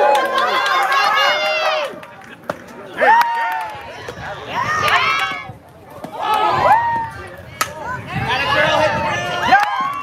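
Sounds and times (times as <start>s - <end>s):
spectators shouting and cheering: 0.0s - 10.0s.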